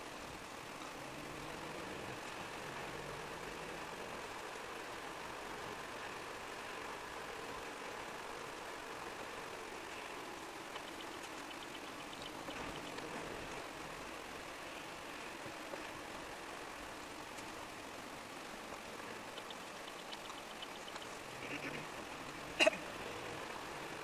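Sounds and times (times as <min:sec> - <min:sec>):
light ticks: 0:18.7 - 0:21.1.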